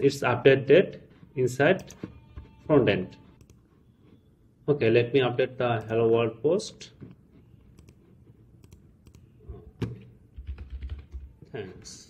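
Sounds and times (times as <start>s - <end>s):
keyboard typing: 3.1s - 4.2s, 7.1s - 11.3s.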